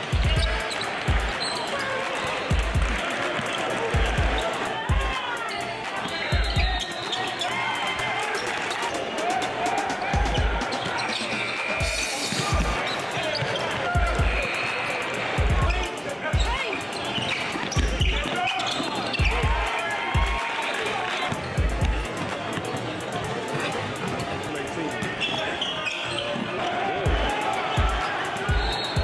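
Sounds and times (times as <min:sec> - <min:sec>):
fast hi-hats: 0:00.0 - 0:10.7, 0:11.6 - 0:21.0, 0:27.1 - 0:29.0.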